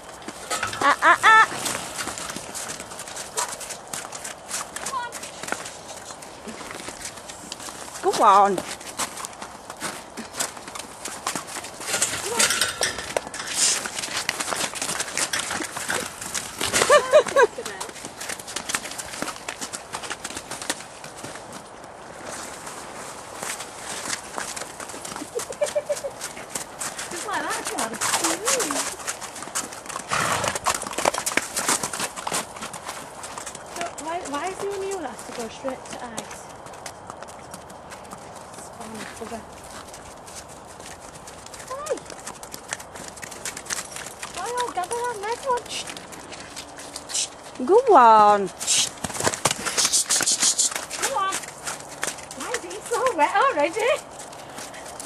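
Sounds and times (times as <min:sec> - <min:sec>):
pony hoofbeats: 0:00.0 - 0:55.0.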